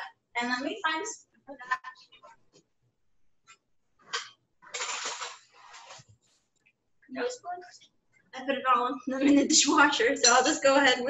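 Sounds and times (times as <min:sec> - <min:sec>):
metal cutlery clattering: 0:04.7 - 0:05.5.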